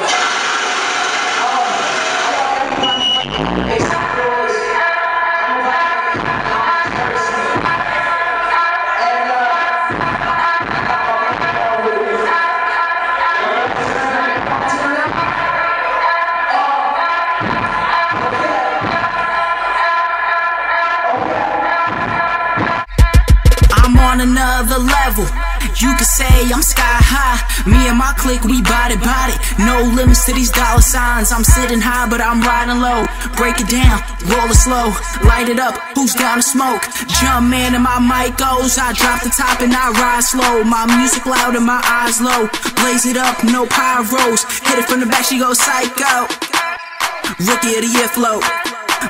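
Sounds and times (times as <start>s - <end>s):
crowd voices: 0.0s - 22.5s, 24.2s - 49.0s
club music: 0.0s - 49.0s.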